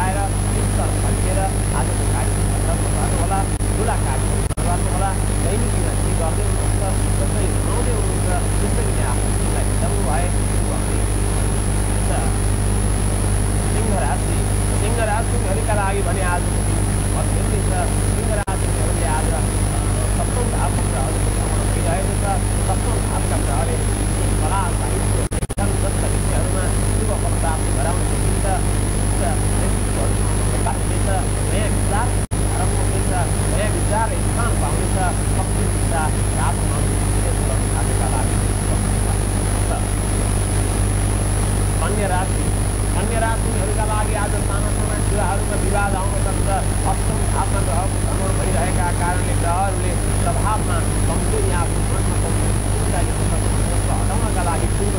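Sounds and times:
man talking: 0:00.0 - 0:12.6, 0:13.4 - 0:40.9, 0:41.6 - 0:54.9
high-pitched whine: 0:00.0 - 0:54.9
low hum: 0:00.0 - 0:54.9.

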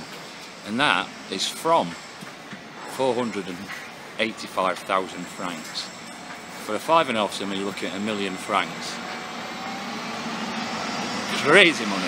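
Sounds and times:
engine noise: 0:00.0 - 0:12.0.

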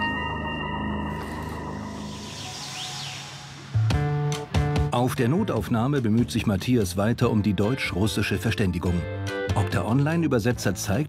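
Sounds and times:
soft music with held notes: 0:00.0 - 0:02.2, 0:03.9 - 0:11.0.

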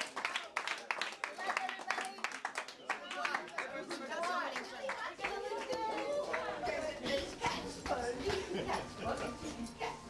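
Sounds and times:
people chattering and calling out: 0:02.9 - 0:10.0.

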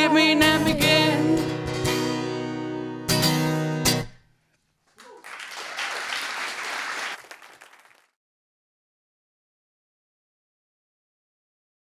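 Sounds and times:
guitar and singing: 0:00.0 - 0:04.0
audience applause: 0:04.9 - 0:08.2.

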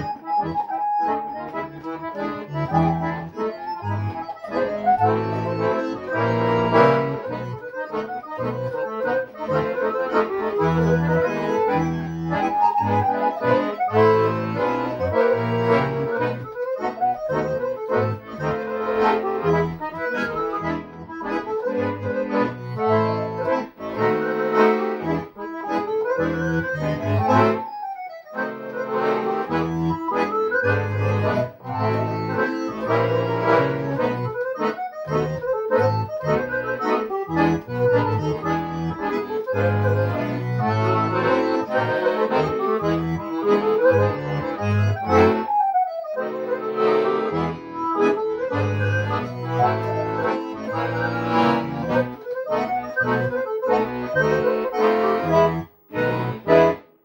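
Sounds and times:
accordion folk melody: 0:00.0 - 0:57.0.

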